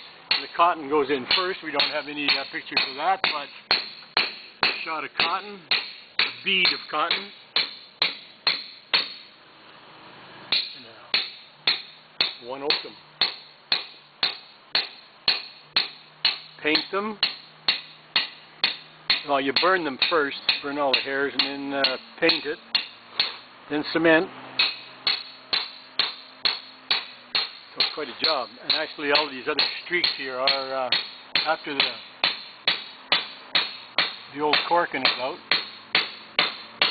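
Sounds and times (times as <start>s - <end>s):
mallet striking caulking iron: 0.3s - 0.6s, 1.3s - 9.3s, 10.5s - 23.4s, 24.6s - 36.9s.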